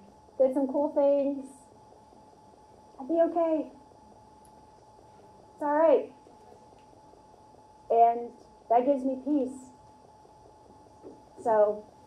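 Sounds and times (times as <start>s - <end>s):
faint steady hum: 0.0s - 12.0s
woman talking: 0.4s - 1.7s, 3.0s - 3.8s, 5.6s - 6.2s, 7.9s - 9.8s, 11.4s - 11.8s.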